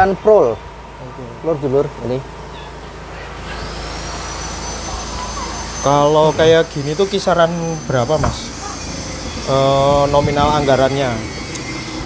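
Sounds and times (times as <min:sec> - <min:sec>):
cooling fan whine and air rush: 0:00.0 - 0:12.0.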